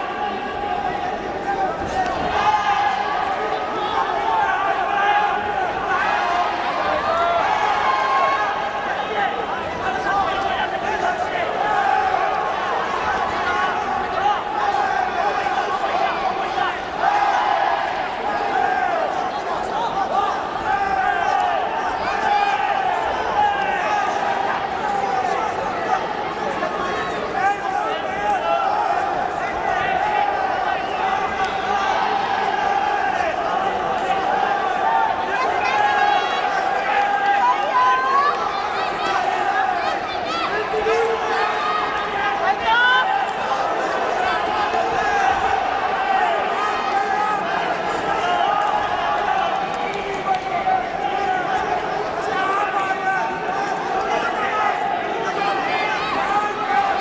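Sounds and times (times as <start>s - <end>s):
crowd shouting: 0.0s - 57.0s.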